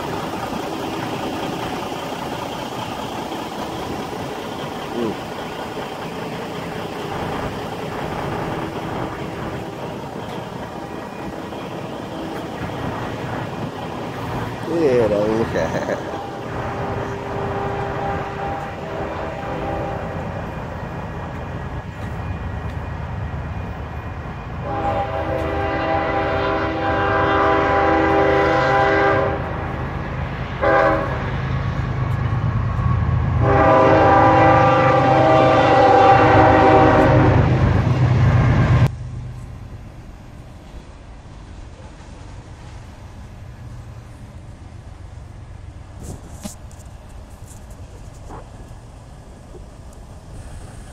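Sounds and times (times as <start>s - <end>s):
low engine rumble: 0.0s - 50.9s
multi-note air horn blasts: 16.6s - 20.1s, 24.6s - 29.4s, 30.6s - 31.2s, 33.4s - 37.5s.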